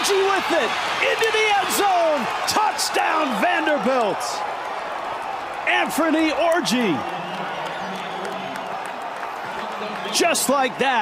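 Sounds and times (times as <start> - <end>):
stadium crowd cheering and applauding: 0.0 - 11.0.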